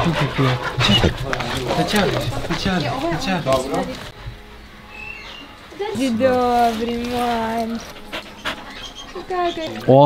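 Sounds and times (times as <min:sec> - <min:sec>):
dog panting: 0:00.0 - 0:04.1, 0:06.6 - 0:10.0.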